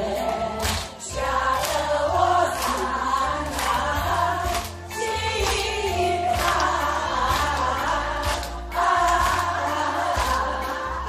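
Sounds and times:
crowd singing along: 0.0 - 11.0
loud amplified backing music: 0.0 - 11.0.

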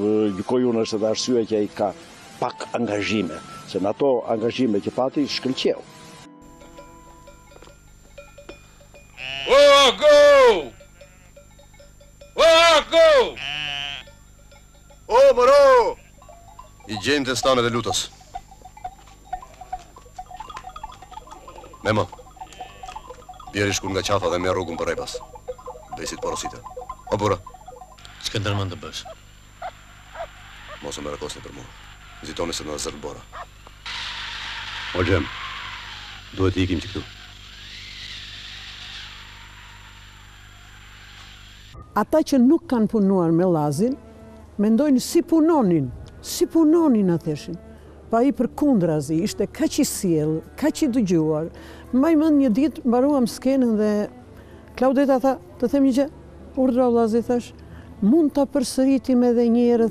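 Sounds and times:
film soundtrack hiss: 0.0 - 59.9
low electrical hum: 0.0 - 59.9
man shouting a long call: 9.4 - 10.8, 12.4 - 13.4
faint rising and falling tone: 16.2 - 42.0.

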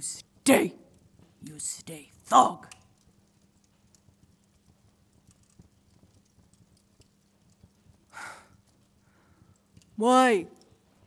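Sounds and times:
soft ticks: 2.7 - 10.8.

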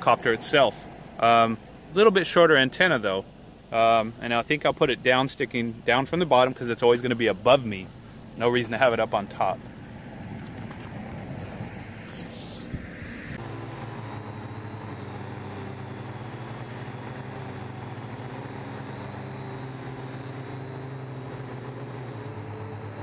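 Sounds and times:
drone motors and propellers humming: 7.4 - 23.0.

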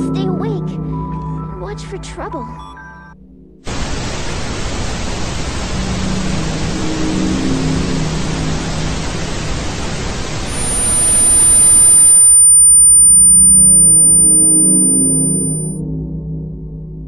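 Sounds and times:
tv static hiss: 3.7 - 15.8
piercing high tone: 9.9 - 15.8.

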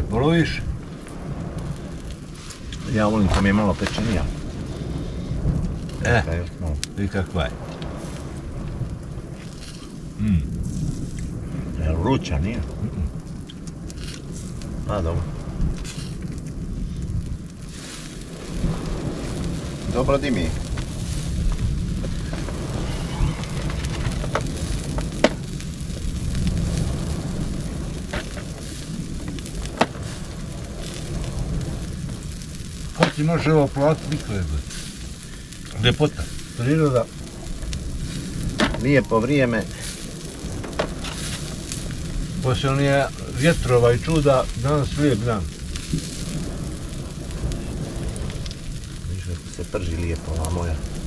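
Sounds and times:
fire low rumble: 0.0 - 51.0
surf on shore: 0.0 - 51.0
wind: 0.0 - 51.0
wood fire crackling pops: 0.0 - 51.0.

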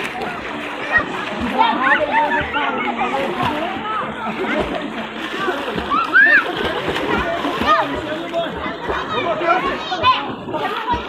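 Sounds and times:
water splashing in pool: 0.0 - 11.0.

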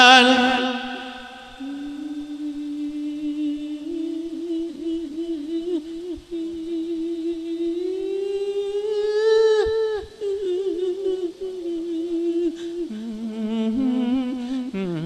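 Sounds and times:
monk chanting into microphone: 0.0 - 4.7.

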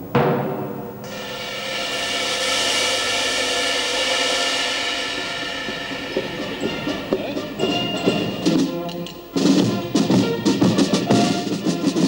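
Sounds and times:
cymbal roll: 0.0 - 12.0
military band chord: 0.0 - 12.0.

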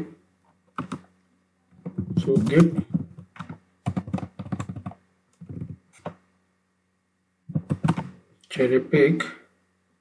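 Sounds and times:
computer keyboard typing: 0.8 - 1.1, 2.0 - 6.2, 7.6 - 8.1.

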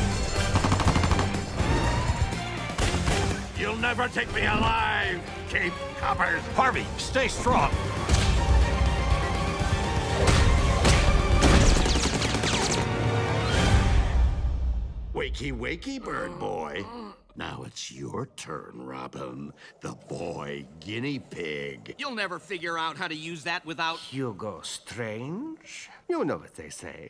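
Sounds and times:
film trailer music: 0.0 - 17.4
machine-gun fire: 0.3 - 1.5, 11.3 - 12.9.

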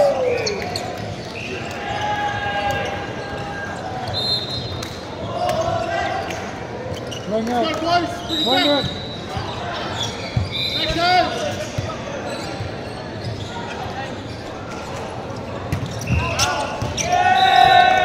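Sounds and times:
voices and shouted calls: 15.9 - 18.0.

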